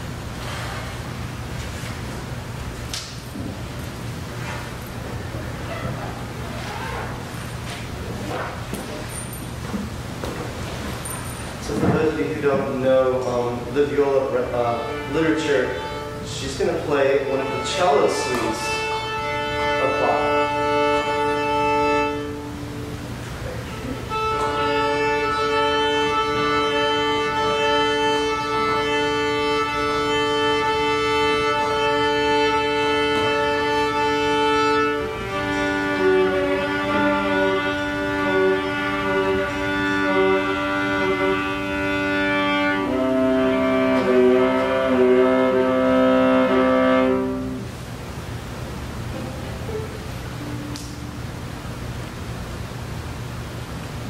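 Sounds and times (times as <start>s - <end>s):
short sliding viola notes: 11.0s - 23.1s, 23.7s - 47.7s
viola strings bowed in fifths: 11.0s - 47.7s.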